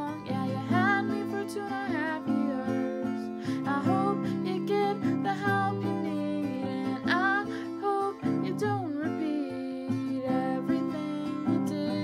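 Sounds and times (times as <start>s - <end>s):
acoustic guitar strumming: 0.0s - 12.0s
woman singing: 0.0s - 12.0s.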